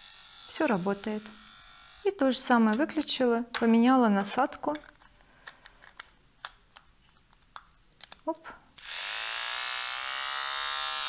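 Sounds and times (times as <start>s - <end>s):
trimmer motor buzzing: 0.0s - 2.1s, 8.8s - 11.0s.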